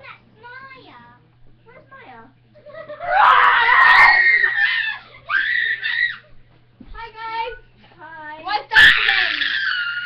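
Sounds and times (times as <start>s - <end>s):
girls screaming: 3.0s - 6.3s, 8.8s - 10.0s.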